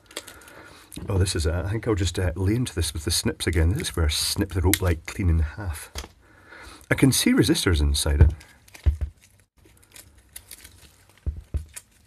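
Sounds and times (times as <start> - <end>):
plastic film crinkling: 8.4 - 12.0.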